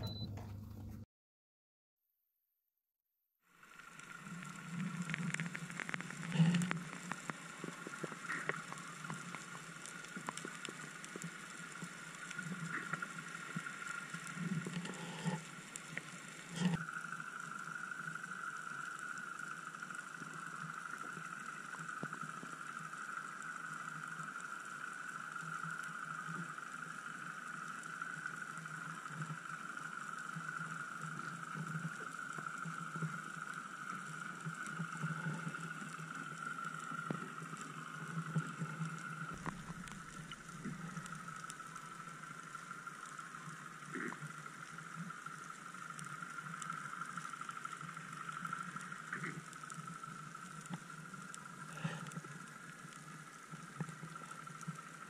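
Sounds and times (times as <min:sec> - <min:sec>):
high-pitched underwater hum: 0:00.0 - 0:00.9, 0:03.5 - 0:55.0
faint hiss: 0:03.5 - 0:55.0.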